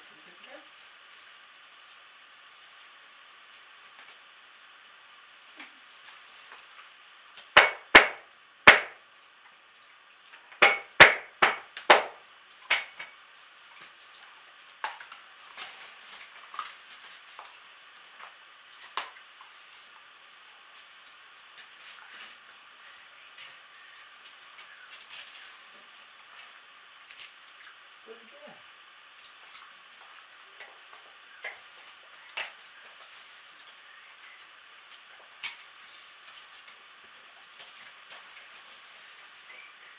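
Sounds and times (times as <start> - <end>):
sharp pops of fire: 7.5 - 9.0.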